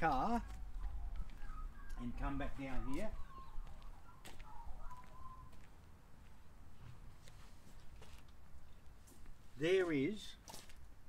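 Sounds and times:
bird calling faintly: 0.1 - 5.8.

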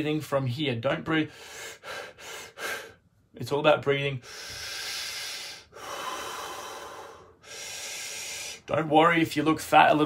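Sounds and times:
man breathing deeply: 1.3 - 3.2, 4.2 - 8.7.

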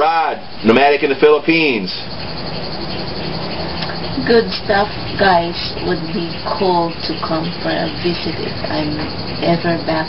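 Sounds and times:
low hum: 0.0 - 10.0
mechanical drone: 0.0 - 10.0.

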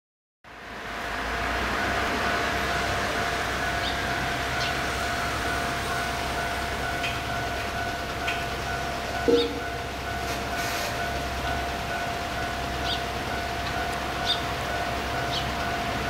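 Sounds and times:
freight train rumble: 0.6 - 16.0.

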